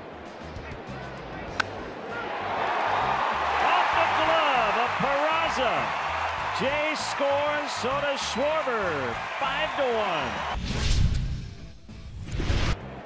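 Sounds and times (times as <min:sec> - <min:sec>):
crowd cheering: 0:00.0 - 0:10.6, 0:12.8 - 0:13.0
wooden bat hitting ball: 0:01.6 - 0:01.8.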